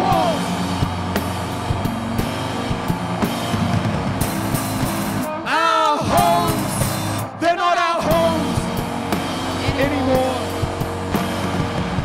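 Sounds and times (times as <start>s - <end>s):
drum hits: 0.0s - 5.4s
electric bass low notes: 0.0s - 5.5s, 8.0s - 12.0s
electric guitar: 0.0s - 7.4s, 8.0s - 12.0s.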